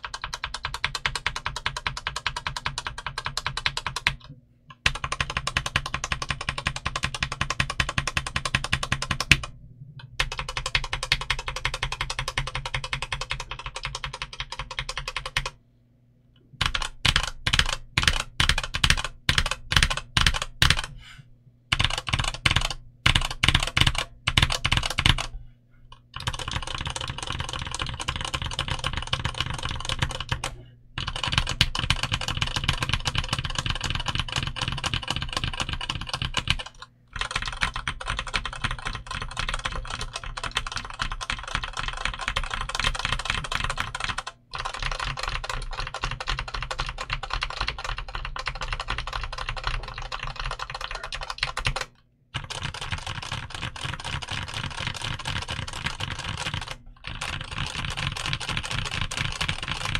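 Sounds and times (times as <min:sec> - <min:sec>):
mechanical keyboard typing: 0:00.0 - 0:09.5, 0:10.2 - 0:15.6, 0:16.6 - 0:20.9, 0:21.7 - 0:25.3, 0:25.9 - 0:59.9
heavy keystrokes: 0:21.7 - 0:25.3, 0:26.2 - 0:59.9.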